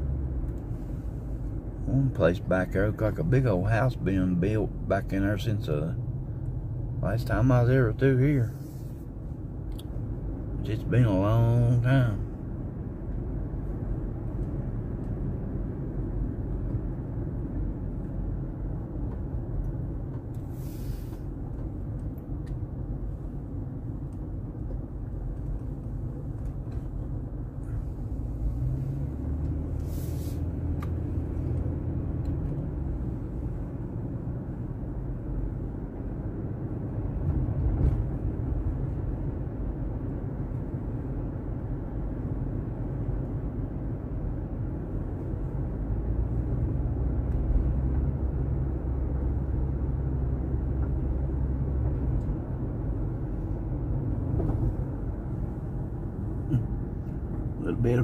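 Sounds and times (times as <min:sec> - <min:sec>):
car engine and tyre rumble: 0:00.0 - 0:58.0
short hisses: 0:20.5 - 0:21.3, 0:29.8 - 0:30.6.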